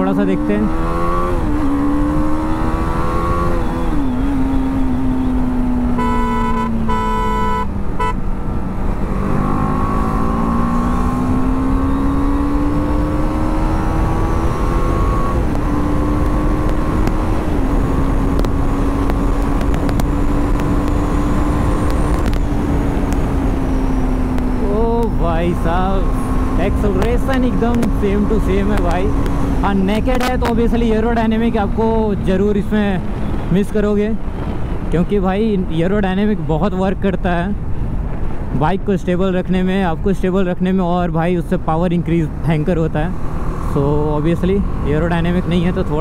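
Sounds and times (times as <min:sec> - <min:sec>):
motorcycle engine accelerating: 0:00.0 - 0:33.5, 0:42.2 - 0:46.0
horn honking: 0:05.9 - 0:08.3
wind rush: 0:12.4 - 0:30.7.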